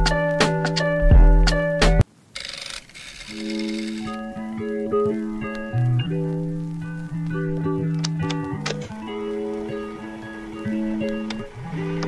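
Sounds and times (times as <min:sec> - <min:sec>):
background music: 0:00.0 - 0:02.0, 0:03.4 - 0:12.0.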